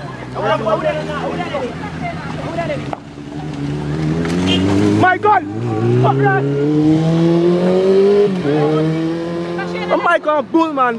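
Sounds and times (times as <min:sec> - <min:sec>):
motorcycle engine accelerating: 0:00.4 - 0:10.0.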